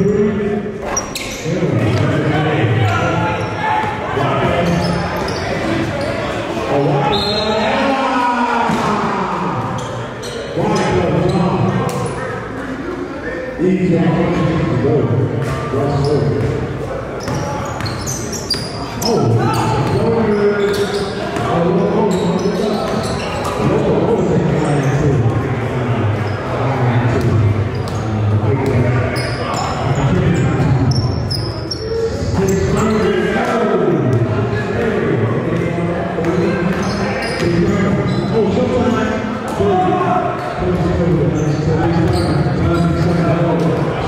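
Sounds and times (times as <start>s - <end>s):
voices echoing in a hall: 0.0s - 44.0s
shoe squeaks: 0.8s - 1.5s, 4.6s - 6.3s, 7.0s - 7.6s, 9.8s - 12.2s, 17.2s - 21.4s, 22.0s - 23.6s, 29.1s - 33.0s, 36.4s - 38.6s, 41.3s - 43.7s.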